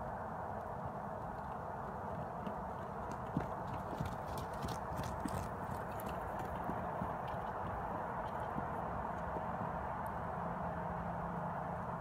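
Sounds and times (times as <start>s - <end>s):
horse hoofbeats on dirt: 0.5s - 10.6s.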